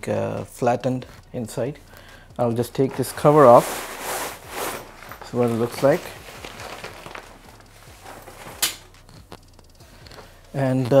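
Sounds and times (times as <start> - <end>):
cover handling noise: 2.8 - 9.4.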